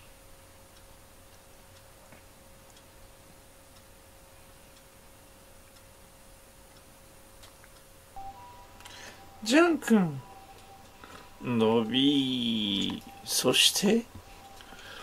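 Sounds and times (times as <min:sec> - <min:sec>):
humidifier humming: 0:00.0 - 0:15.0
light ticks: 0:00.7 - 0:06.0, 0:06.6 - 0:07.9.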